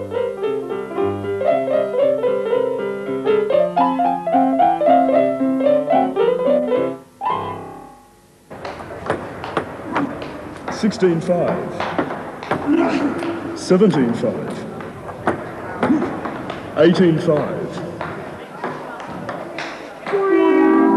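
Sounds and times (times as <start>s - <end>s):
piano music: 0.0s - 8.2s, 20.1s - 20.9s.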